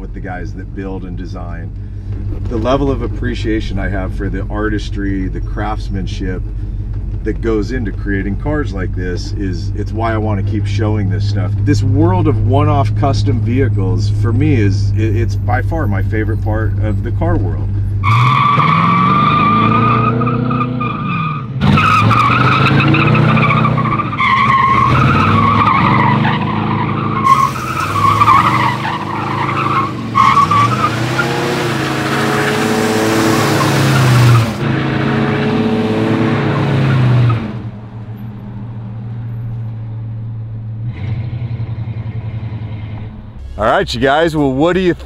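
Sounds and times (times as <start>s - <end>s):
car engine revving: 0.0s - 45.0s
tyres squealing: 17.9s - 37.4s.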